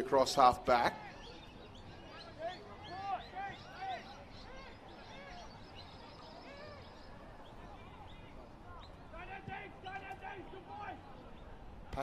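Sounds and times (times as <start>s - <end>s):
small birds chirping: 0.6s - 12.0s
distant players shouting: 1.0s - 11.5s.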